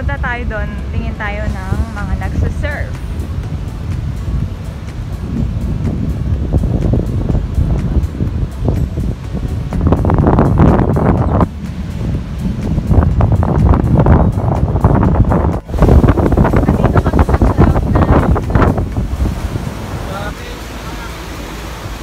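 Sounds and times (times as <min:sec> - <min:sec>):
ocean surf breaking: 0:00.0 - 0:22.0
wind buffeting microphone: 0:00.0 - 0:22.0.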